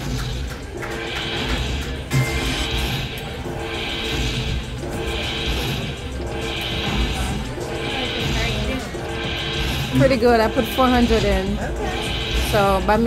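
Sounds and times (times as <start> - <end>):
sharp hit: 0.0 - 13.0
slot machine electronic jingle: 0.1 - 13.0.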